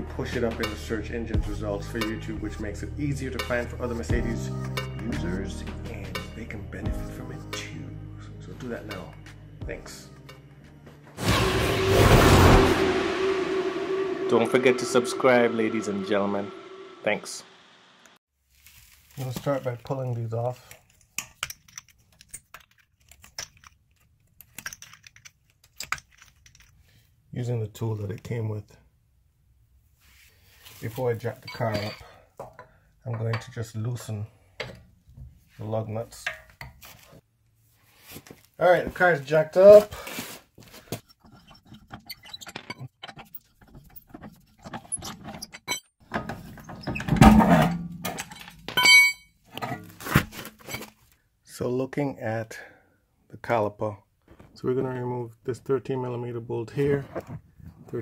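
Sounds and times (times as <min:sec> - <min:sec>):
wheel thud and scrape: 0:11.2 - 0:13.4, 0:43.8 - 0:51.0
short metallic ring: 0:31.5 - 0:32.1, 0:47.7 - 0:49.4.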